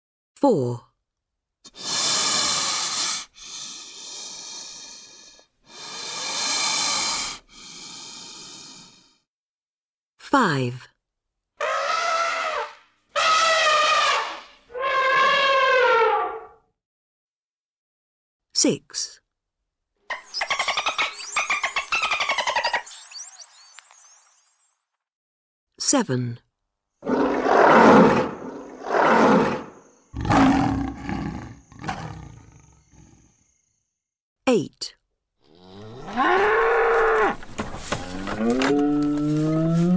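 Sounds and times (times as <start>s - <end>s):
animal calling: 11.6s - 16.6s
animal roaring: 11.6s - 16.6s, 27.0s - 33.3s, 35.5s - 37.4s, 38.0s - 39.9s.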